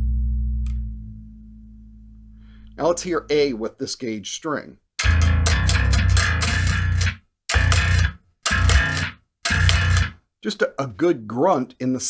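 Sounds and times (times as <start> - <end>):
electric bass riff: 0.0 - 3.6, 5.0 - 10.2.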